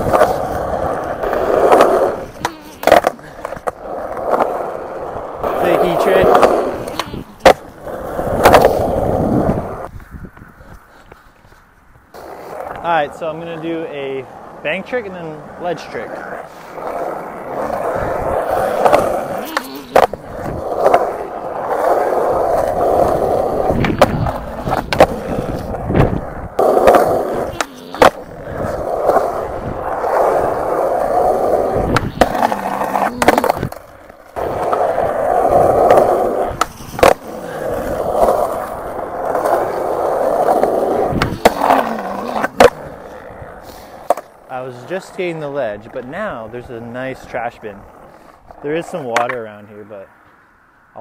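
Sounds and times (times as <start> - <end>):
skateboard clacks: 0.0 - 9.9, 15.8 - 45.1, 47.2 - 49.6
skateboard wheels rolling on concrete: 0.0 - 51.0.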